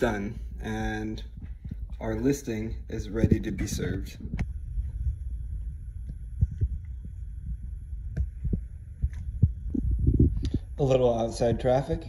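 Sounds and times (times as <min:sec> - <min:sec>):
low handling rumble: 0:00.0 - 0:12.0
light clicks and dull thumps: 0:01.2 - 0:02.3.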